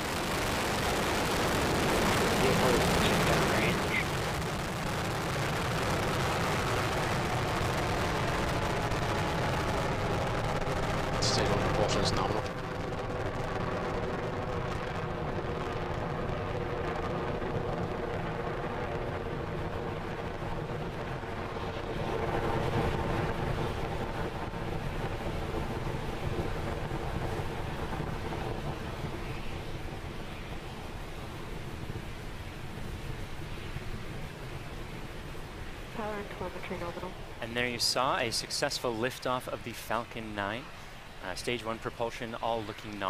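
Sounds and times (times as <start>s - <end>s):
rocket engines rumbling: 0.0s - 43.0s.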